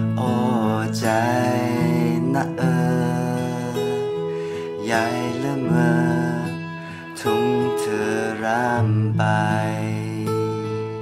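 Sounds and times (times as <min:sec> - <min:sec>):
man singing a slow ballad: 0:00.0 - 0:11.0
strummed acoustic guitar: 0:00.0 - 0:11.0.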